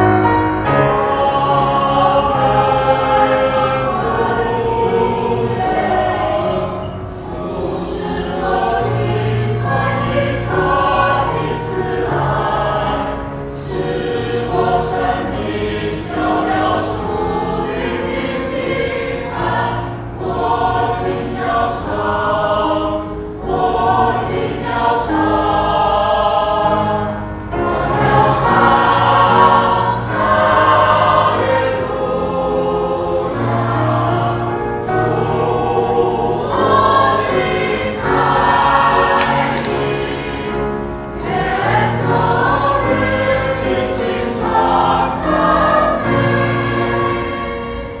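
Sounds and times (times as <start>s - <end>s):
mixed choir singing: 0.0s - 48.0s.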